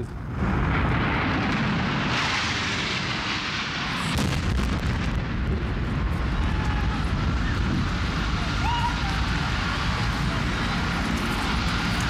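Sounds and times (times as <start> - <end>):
jet airliner roaring low: 0.0 - 12.0
low rumble of explosion: 0.0 - 12.0
sudden boom: 0.3 - 8.7.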